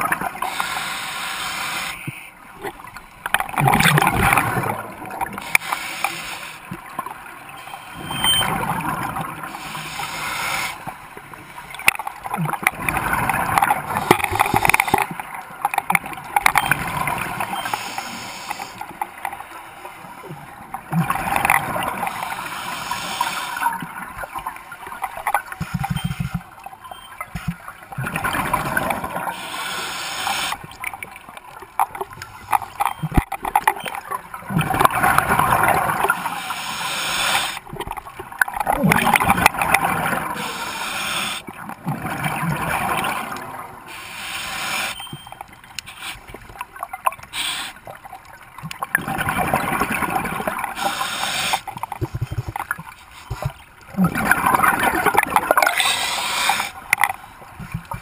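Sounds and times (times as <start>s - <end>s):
regulator hissing on inhale: 0.4s - 2.3s, 5.4s - 6.6s, 9.6s - 10.8s, 17.6s - 18.8s, 22.3s - 23.6s, 29.3s - 30.6s, 36.3s - 37.6s, 40.4s - 41.4s, 43.9s - 45.0s, 45.9s - 46.2s, 47.3s - 47.8s, 50.8s - 51.7s, 55.7s - 56.8s
exhaled bubbles gurgling: 3.4s - 5.7s, 32.0s - 43.9s, 48.6s - 57.1s.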